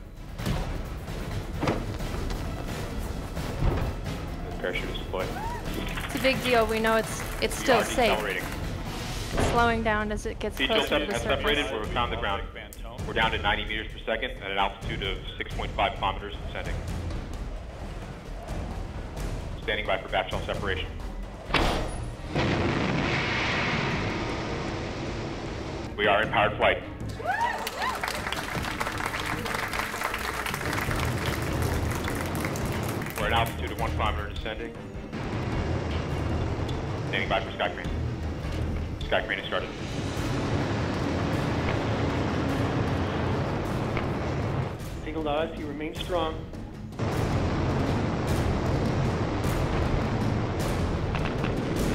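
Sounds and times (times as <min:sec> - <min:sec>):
rushing rocket thruster: 0:21.6 - 0:25.9, 0:39.5 - 0:44.9, 0:47.0 - 0:51.9.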